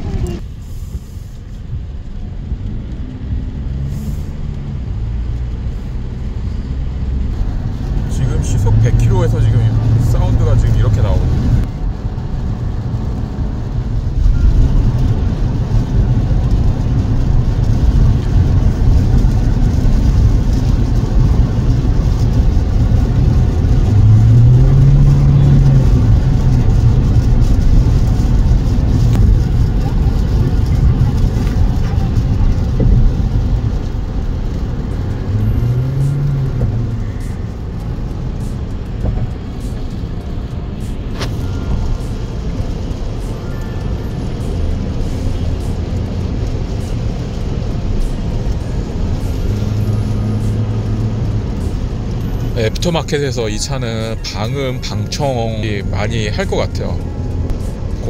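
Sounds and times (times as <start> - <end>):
low engine hum: 0.0 - 58.0
road and tyre rumble: 0.0 - 58.0.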